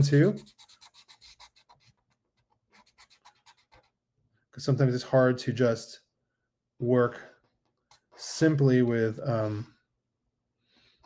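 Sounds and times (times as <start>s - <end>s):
pen scratching on paper: 0.0s - 4.0s.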